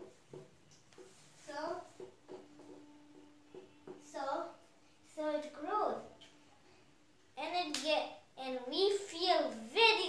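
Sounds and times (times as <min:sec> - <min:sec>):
young boy speaking: 0:01.4 - 0:02.0, 0:04.0 - 0:06.1, 0:07.4 - 0:10.0.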